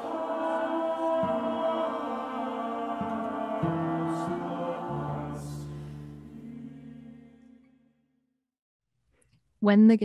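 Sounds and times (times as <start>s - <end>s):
choir singing sustained chords: 0.0s - 8.0s.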